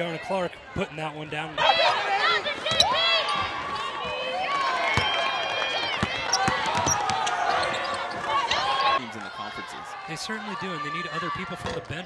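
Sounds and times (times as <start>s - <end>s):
sneakers squeaking: 2.5s - 5.2s, 5.8s - 9.0s
basketball bouncing: 5.9s - 8.4s.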